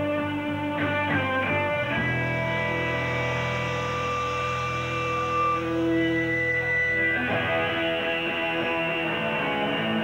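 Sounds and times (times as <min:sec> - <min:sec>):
sustained electric guitar drone: 0:00.0 - 0:10.0
amplifier hum: 0:01.5 - 0:10.0.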